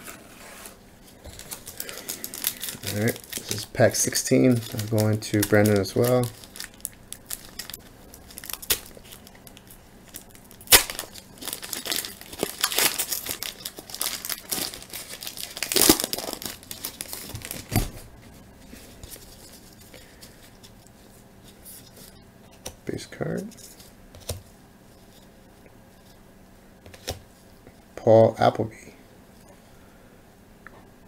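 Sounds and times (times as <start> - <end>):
foil wrapper tearing and crinkling: 1.2 - 17.8.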